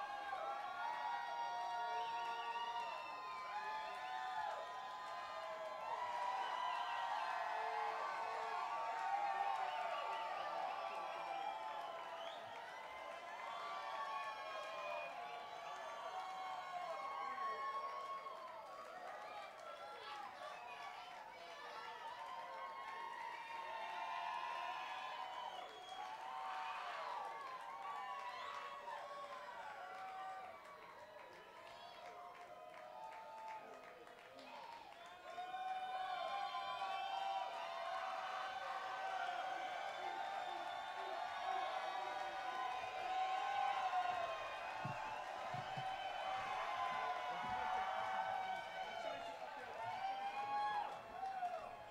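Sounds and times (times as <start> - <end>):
crowd talking and cheering: 0.0 - 51.9.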